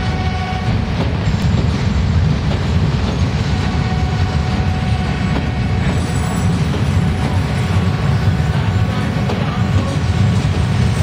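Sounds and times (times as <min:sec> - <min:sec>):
train rumbling past: 0:00.0 - 0:11.0.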